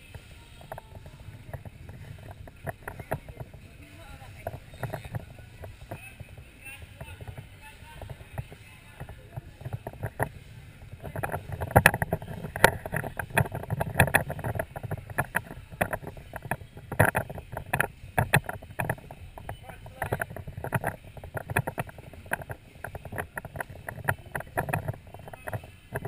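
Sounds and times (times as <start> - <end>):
murmur of background voices: 0.0 - 26.0.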